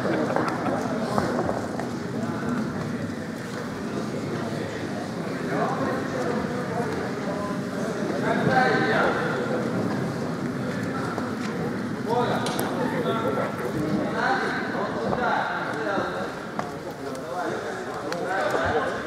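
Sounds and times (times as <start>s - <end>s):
arena background noise: 0.0s - 19.0s.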